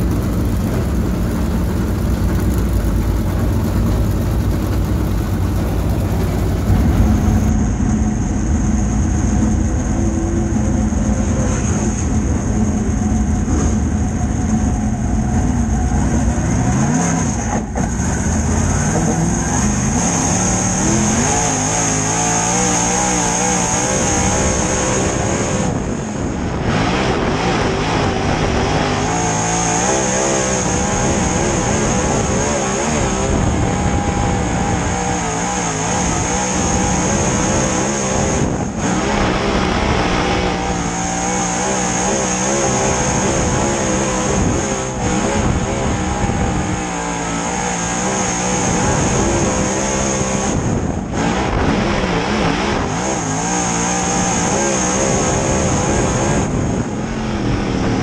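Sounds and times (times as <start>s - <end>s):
race car engine revving: 0.0s - 7.8s, 9.8s - 58.0s
steady high whine: 0.0s - 58.0s.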